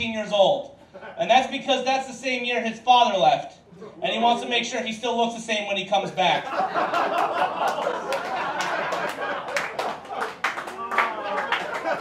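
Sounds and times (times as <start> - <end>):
audience laughing: 6.3 - 12.0
hand claps: 7.2 - 12.0.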